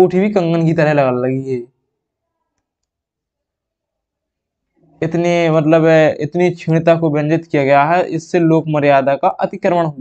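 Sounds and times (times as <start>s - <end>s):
faint clicks: 2.5s - 3.0s.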